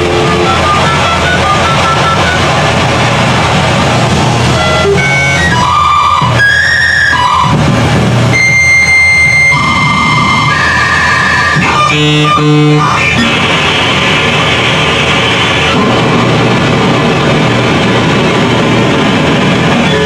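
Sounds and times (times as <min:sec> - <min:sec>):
sustained electronic tones: 0:00.0 - 0:02.9, 0:04.5 - 0:15.9, 0:19.7 - 0:20.0
distorted harsh noise music: 0:00.0 - 0:20.0.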